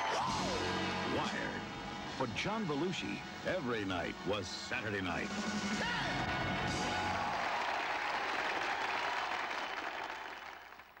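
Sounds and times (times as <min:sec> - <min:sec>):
audience applause: 0:06.3 - 0:11.0.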